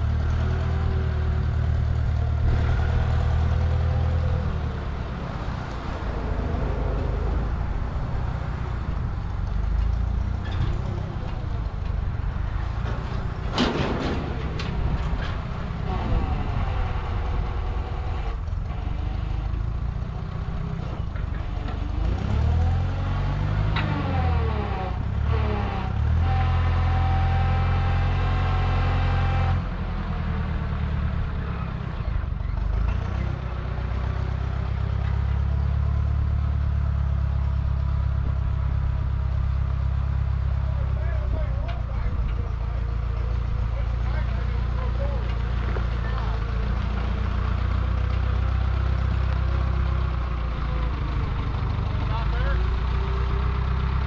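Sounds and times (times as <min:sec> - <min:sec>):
forklift engine revving: 0:00.0 - 0:54.0.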